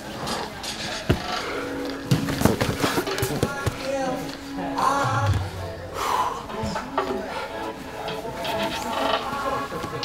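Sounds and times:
background music: 0.0 - 10.0
bodies scuffing on mats: 2.1 - 4.0.

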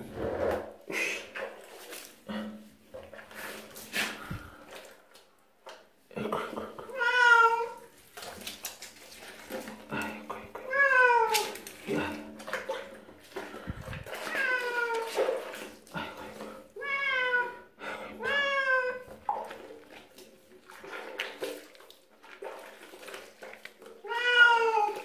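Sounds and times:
cat meowing: 6.9 - 7.8, 16.8 - 17.6, 18.2 - 19.0, 24.0 - 25.0.

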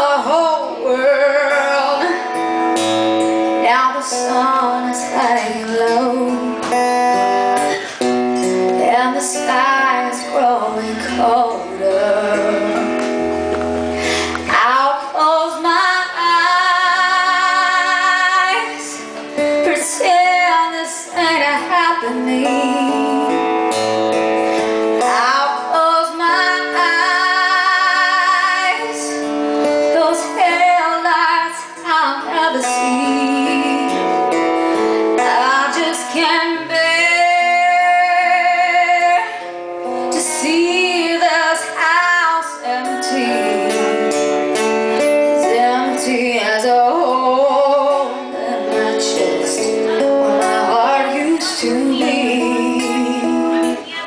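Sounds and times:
guitar accompaniment: 0.0 - 54.0
woman singing country ballad: 0.0 - 54.0.

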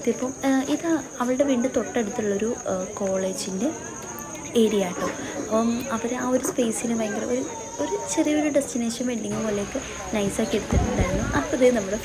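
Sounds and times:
woman talking: 0.0 - 3.8, 4.5 - 12.0.

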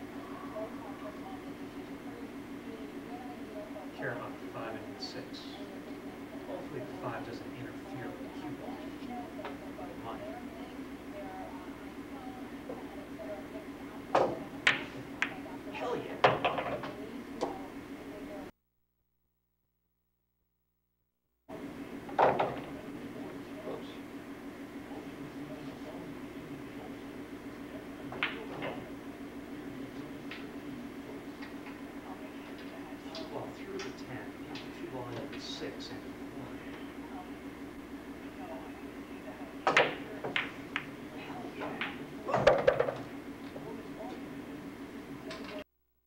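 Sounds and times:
steady low hum: 0.0 - 18.6, 19.6 - 45.7
pool balls clacking: 14.1 - 15.4, 16.2 - 17.5, 39.6 - 43.7.

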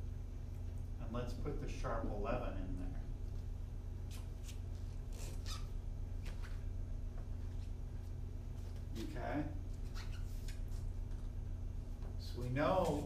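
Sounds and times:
low room hum: 0.0 - 13.0
marker squeaking on a whiteboard: 4.1 - 5.8, 9.7 - 10.9.

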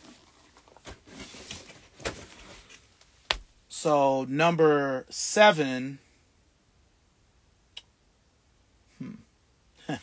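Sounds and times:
shoes rustling and shuffling: 0.0 - 3.5.

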